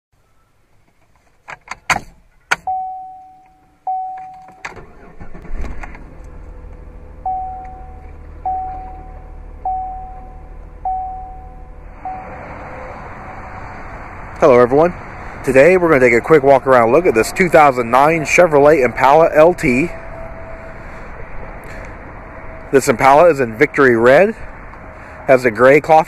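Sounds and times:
car engine cranking and idling: 0.6s - 26.0s
car warning chime: 2.5s - 5.3s, 7.2s - 12.4s
key and ignition clicks: 3.4s - 6.0s.

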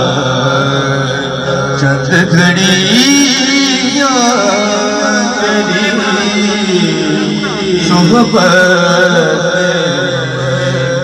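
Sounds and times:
man singing through microphone: 0.0s - 11.0s.

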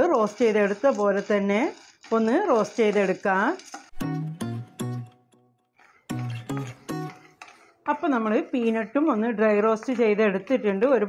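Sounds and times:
woman speaking: 0.0s - 3.6s, 7.9s - 11.0s.

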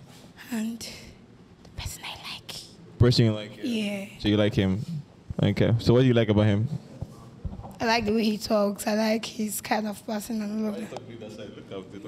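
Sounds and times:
woman whispering: 0.4s - 2.8s.

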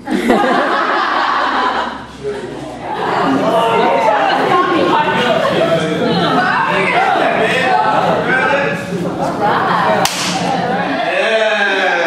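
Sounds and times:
people chattering: 1.2s - 12.0s
hand smack: 10.0s - 10.4s.

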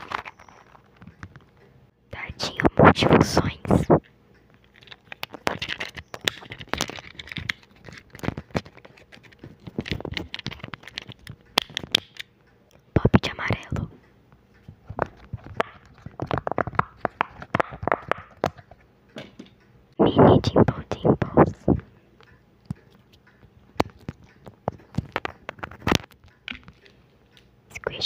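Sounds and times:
fidget toys clicking and popping: 4.6s - 12.3s.

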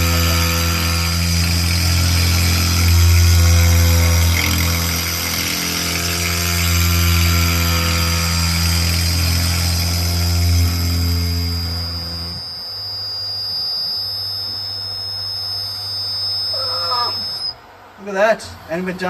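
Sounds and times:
high-pitched spindle whine: 0.0s - 19.0s
machine hum and cutting hiss: 0.0s - 19.0s.

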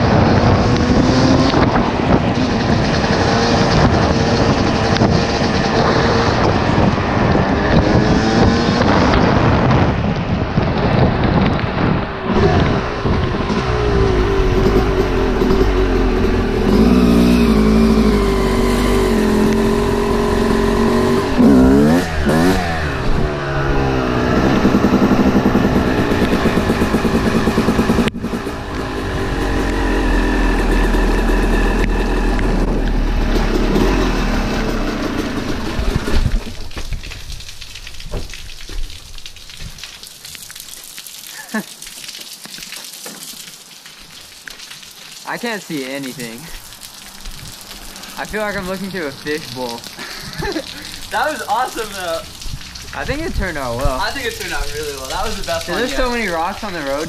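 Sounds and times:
wind on microphone: 0.0s - 34.2s, 35.4s - 39.9s, 47.2s - 47.7s
dirt bike engine revving: 12.2s - 36.5s.

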